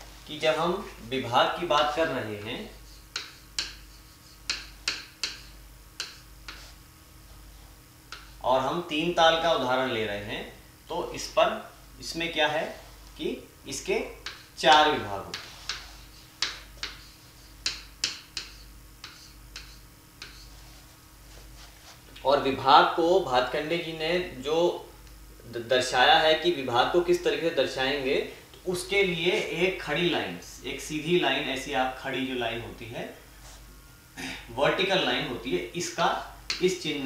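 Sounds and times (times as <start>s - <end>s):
pen tip tapping on board: 4.5s - 6.6s.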